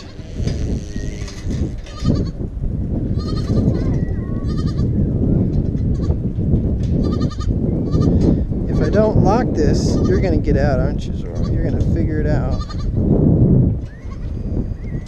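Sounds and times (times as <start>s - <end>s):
goat bleating: 0.0s - 2.4s, 3.1s - 4.9s, 7.0s - 8.2s, 12.4s - 12.9s
low rumbling microphone noise: 0.0s - 15.0s.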